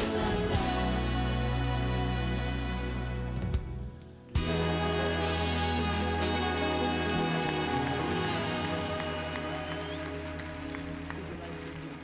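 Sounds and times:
worship band and singers: 0.0s - 12.0s.

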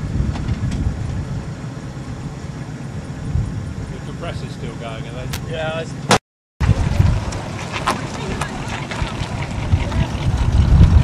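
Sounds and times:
wind buffeting microphone: 0.0s - 5.8s, 6.6s - 11.0s
car driving slowly past: 5.8s - 11.0s.

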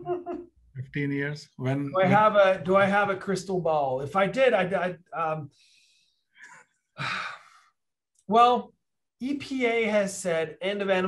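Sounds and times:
man sighing: 6.4s - 7.6s.

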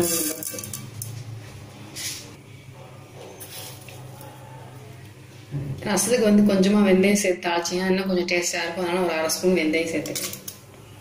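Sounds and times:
seeds sizzling in hot oil: 0.0s - 0.8s.

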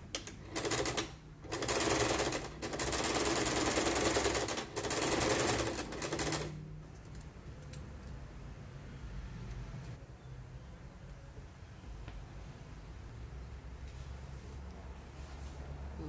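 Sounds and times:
sewing machine stitching: 0.2s - 6.6s.

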